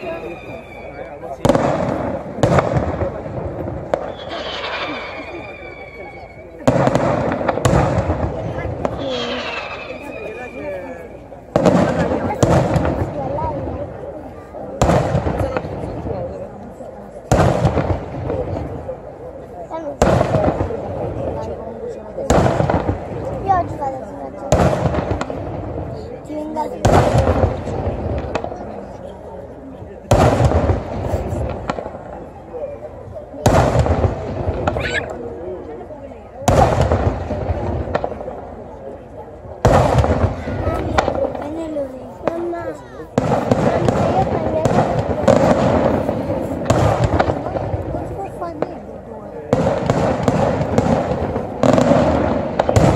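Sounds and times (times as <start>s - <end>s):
fireworks bursting with loud bangs: 0.0s - 52.9s
fireworks rumble and crackle: 0.0s - 52.9s.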